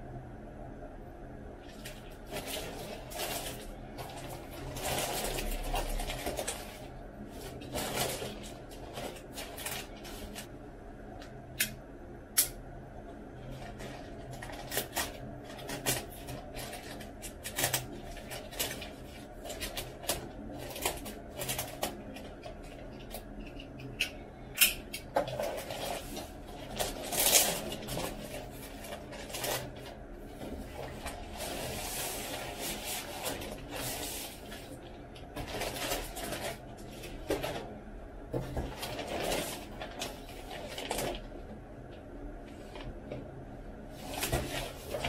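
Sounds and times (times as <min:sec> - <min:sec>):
plastic bag rustling: 0:01.6 - 0:10.6, 0:13.4 - 0:23.3, 0:25.1 - 0:41.6, 0:43.8 - 0:45.0.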